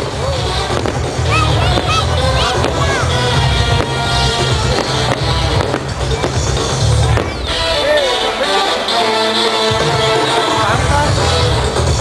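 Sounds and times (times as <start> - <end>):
fireworks bursting: 0.0 - 12.0
loud music with pulsing bass: 0.0 - 12.0.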